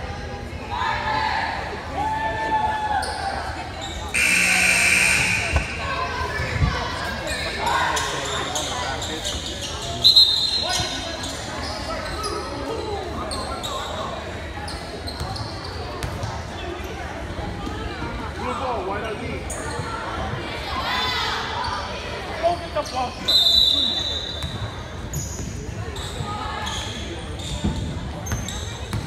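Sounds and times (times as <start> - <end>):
voices echoing in a hall: 0.0 - 29.0
short sharp high-pitched sound: 4.2 - 5.6.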